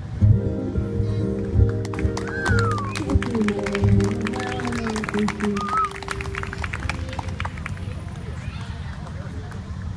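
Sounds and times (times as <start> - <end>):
people talking in background: 0.8 - 9.9.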